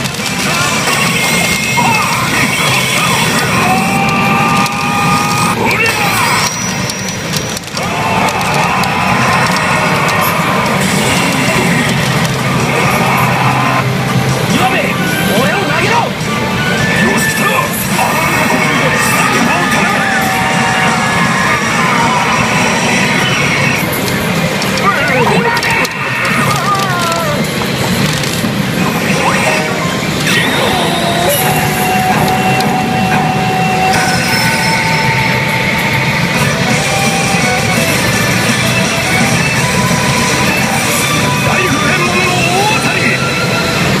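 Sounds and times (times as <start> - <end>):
dramatic music: 0.0 - 44.0
game sound effects: 0.0 - 44.0
recorded character voice lines: 24.7 - 27.6, 28.8 - 32.5, 41.0 - 43.7.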